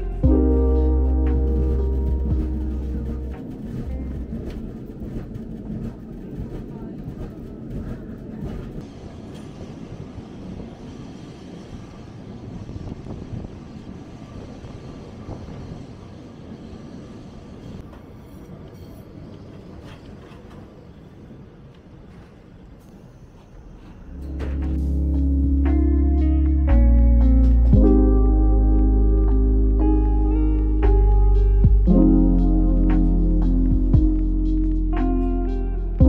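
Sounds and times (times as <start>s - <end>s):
music: 0.0s - 5.0s, 24.2s - 36.0s
wooden tram rumbling on rails: 0.0s - 16.1s, 17.6s - 22.8s, 23.4s - 25.8s.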